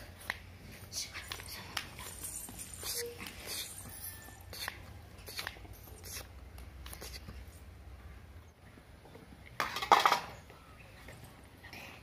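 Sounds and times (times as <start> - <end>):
clatter on metal plate: 9.6 - 10.4.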